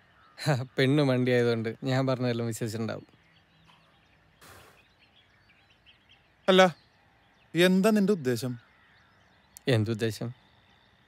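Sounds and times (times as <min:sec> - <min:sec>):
faint birds chirping: 0:00.0 - 0:11.0
brief soft hiss: 0:04.4 - 0:04.9.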